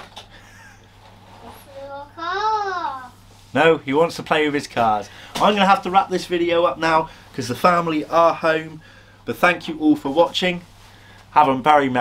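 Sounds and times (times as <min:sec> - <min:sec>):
young child calling: 0:01.8 - 0:03.1.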